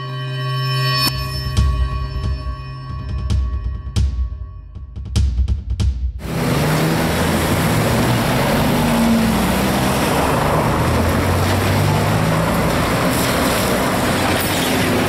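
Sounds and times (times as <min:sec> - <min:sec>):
road and street noise: 0:06.2 - 0:15.0
vehicle engines running: 0:06.2 - 0:15.0.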